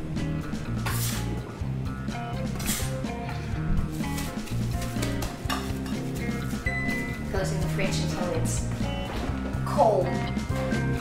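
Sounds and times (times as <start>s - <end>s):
background music with bass line: 0.0s - 11.0s
metal bench scraper scraping: 0.8s - 1.4s, 2.5s - 3.0s.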